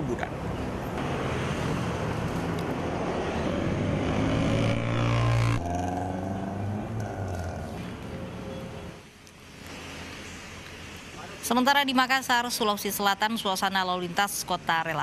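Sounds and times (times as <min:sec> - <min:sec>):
city street traffic: 0:00.0 - 0:15.0
motorcycle engines passing: 0:00.3 - 0:09.0.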